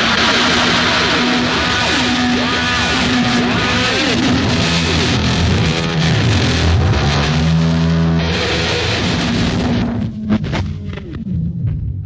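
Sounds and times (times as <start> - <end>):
rock music with electric guitar: 0.0 - 12.0.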